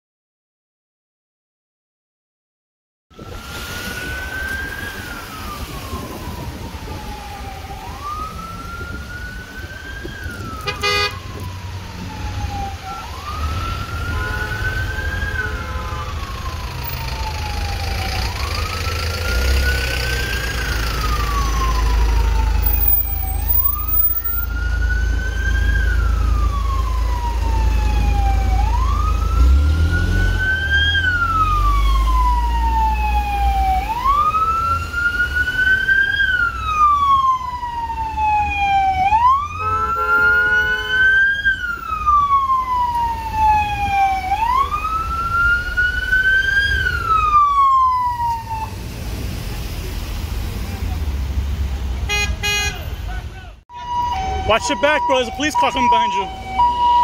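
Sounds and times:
emergency siren wailing: 3.1 - 49.0, 52.0 - 57.0
traffic rumble: 3.1 - 57.0
horn blast: 10.6 - 11.2, 39.6 - 41.0.

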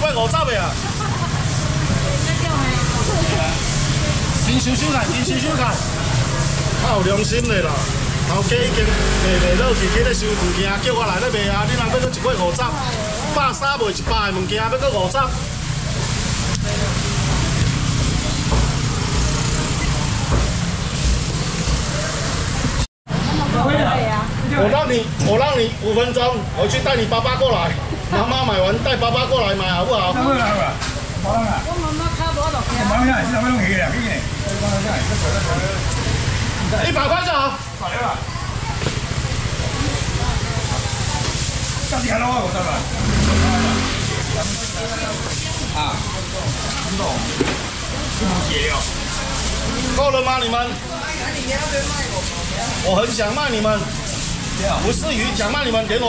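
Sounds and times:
faint distant voices: 0.0 - 56.0
low market rumble: 0.0 - 56.0.

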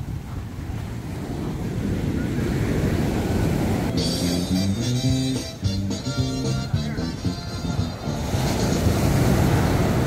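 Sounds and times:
wind rumbling on microphone: 0.0 - 4.0, 7.7 - 10.0
small waves breaking: 8.2 - 10.0.

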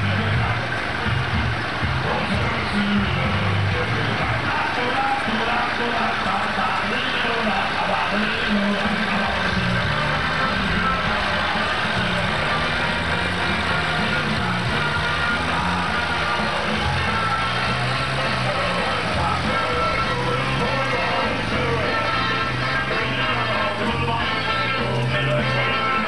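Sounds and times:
music with stepping bass line: 0.0 - 6.0, 6.6 - 26.0
crowd voices: 0.0 - 26.0
tractor engine running: 0.0 - 26.0.

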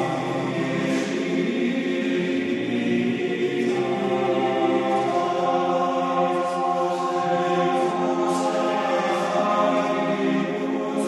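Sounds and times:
male choir chanting: 0.0 - 11.0.

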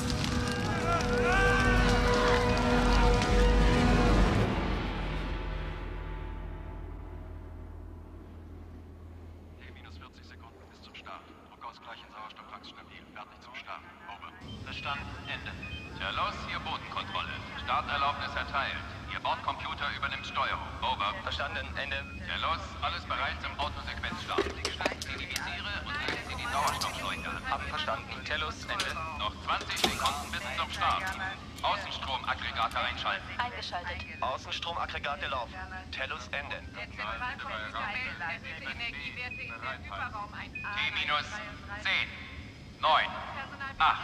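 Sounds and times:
steady low hum: 0.0 - 44.0
indistinct voices: 9.4 - 34.5.

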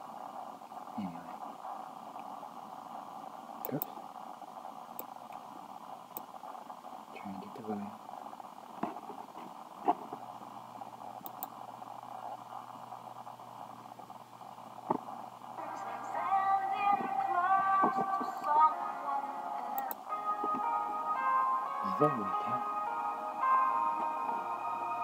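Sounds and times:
steady hiss: 0.0 - 25.0
sharp clicks: 11.2 - 11.6
song with singing through speaker: 15.6 - 25.0.

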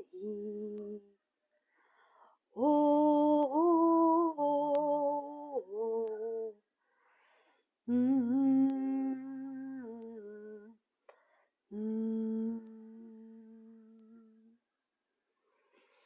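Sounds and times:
woman humming: 11.7 - 14.6.

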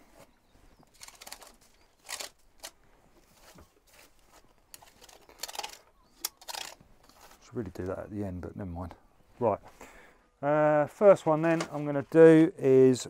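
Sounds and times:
hand brushing compost rustling: 3.2 - 5.0.

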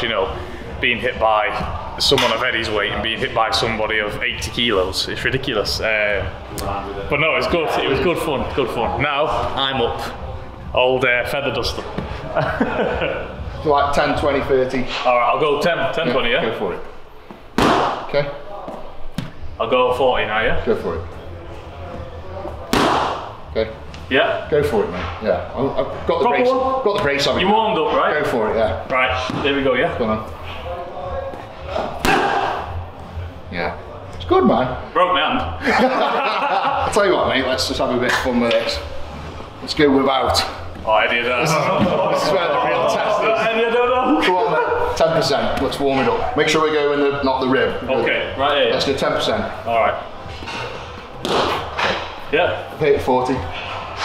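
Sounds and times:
glove punch smacking body pad: 22.7 - 23.3.

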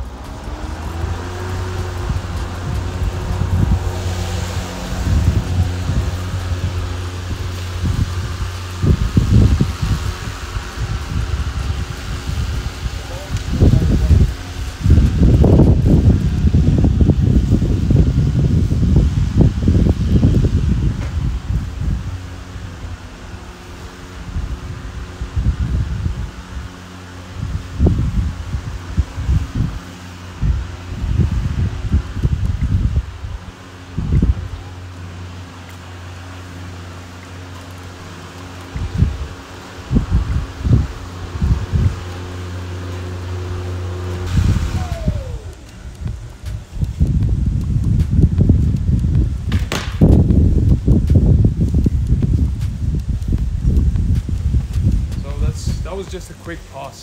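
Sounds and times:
electric lawn mower whirring: 0.0 - 57.0
low rumbling bursts: 0.0 - 57.0.

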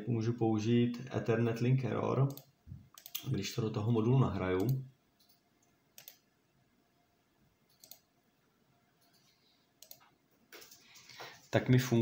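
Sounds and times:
computer mouse clicks: 2.3 - 3.3, 4.6 - 6.2, 7.7 - 8.1, 9.0 - 11.5.

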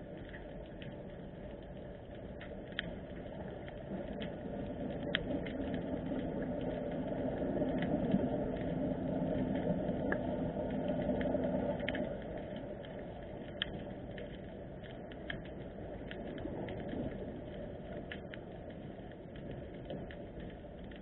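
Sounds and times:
underwater water noise: 0.0 - 21.0
sharp underwater clicks: 0.1 - 21.0.

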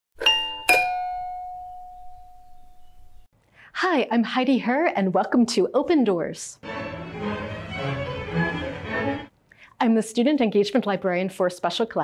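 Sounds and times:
two-note doorbell chime: 0.2 - 3.3.

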